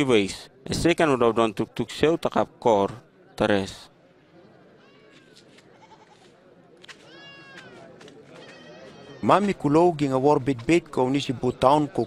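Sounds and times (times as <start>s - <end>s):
murmur of voices: 0.0s - 12.0s
animal bleats: 5.7s - 6.3s.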